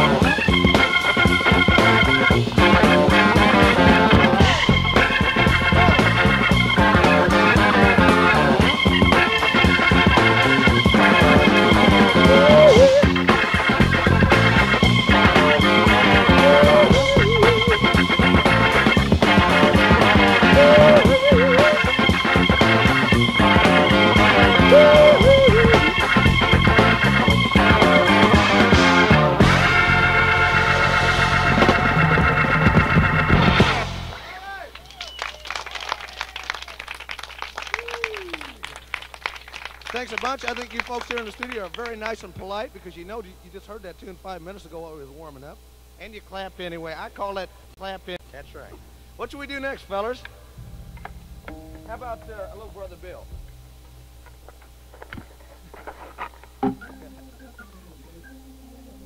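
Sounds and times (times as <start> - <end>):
blues-rock band playing: 0.0 - 34.2, 50.2 - 59.0
low held tone: 7.1 - 13.4, 14.8 - 28.3, 49.6 - 55.9, 56.6 - 59.0
audience calls: 11.1 - 13.3, 15.4 - 26.1, 33.7 - 41.8
audience clapping: 34.4 - 42.5.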